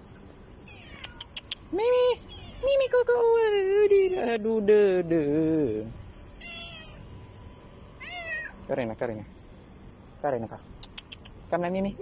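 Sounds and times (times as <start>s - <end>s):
cat meowing: 0.6s - 1.4s, 6.4s - 7.1s, 8.0s - 8.6s.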